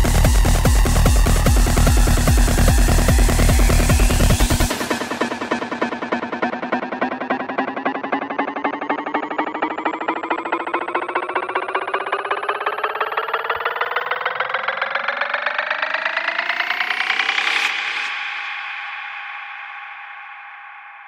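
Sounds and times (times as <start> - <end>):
pulsing synth riser: 0.0 - 18.1.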